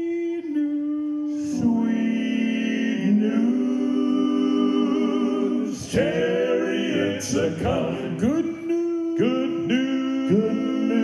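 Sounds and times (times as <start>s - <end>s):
male vocal quartet singing: 0.0s - 11.0s.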